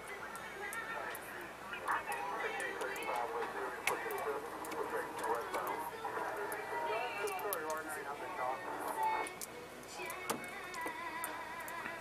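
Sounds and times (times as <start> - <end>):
voices murmuring: 0.2 - 10.2.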